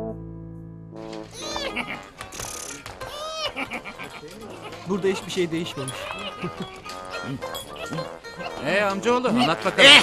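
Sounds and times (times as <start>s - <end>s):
faint music: 1.0s - 10.0s.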